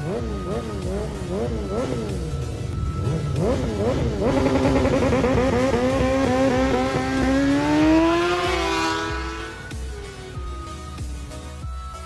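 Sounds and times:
motorcycle accelerating through gears: 0:00.0 - 0:10.3
motorcycle engines revving: 0:00.0 - 0:11.4.

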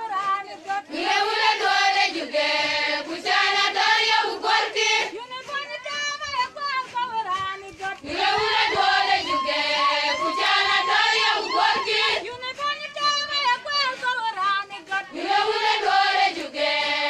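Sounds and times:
women singing together: 0:00.0 - 0:17.0.

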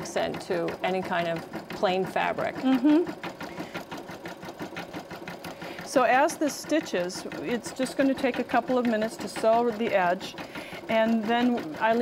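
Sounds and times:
embroidery machine stitching: 0:00.0 - 0:12.0.

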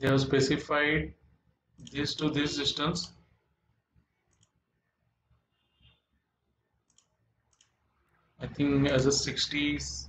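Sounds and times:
faint computer mouse clicks: 0:04.3 - 0:04.6, 0:06.9 - 0:07.8.

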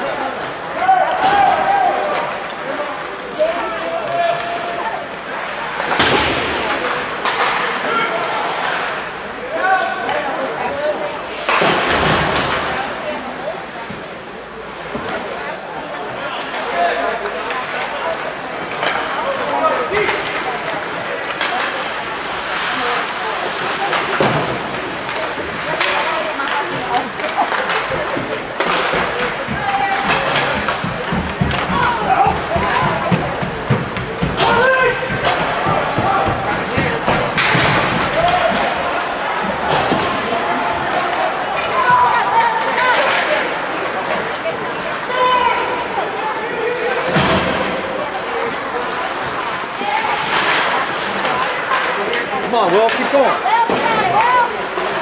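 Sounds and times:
din of arena: 0:00.0 - 0:55.0
hockey sticks and puck knocking: 0:05.7 - 0:07.9, 0:17.3 - 0:45.7, 0:48.9 - 0:55.0.

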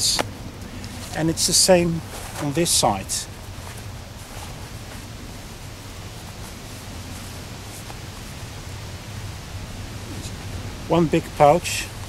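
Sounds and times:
outdoor background hiss: 0:00.0 - 0:12.0
fabric rustling: 0:00.7 - 0:08.5.

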